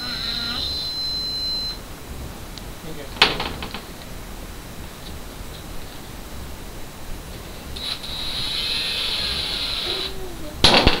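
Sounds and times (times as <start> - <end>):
stud finder beeping: 0.0 - 1.8
sharp knock: 10.6 - 11.0.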